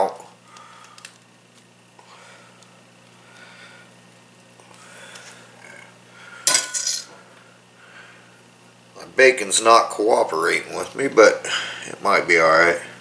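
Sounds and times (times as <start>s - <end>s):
knife clattering on tray: 6.5s - 7.1s.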